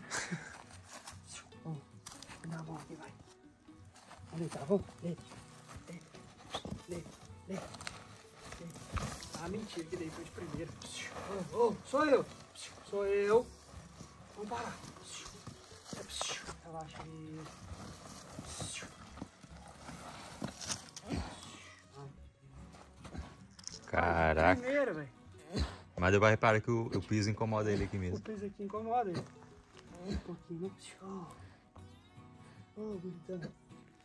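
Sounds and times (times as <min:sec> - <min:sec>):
scuffs and rustles on dry dirt: 0:00.0 - 0:25.0, 0:27.0 - 0:31.6.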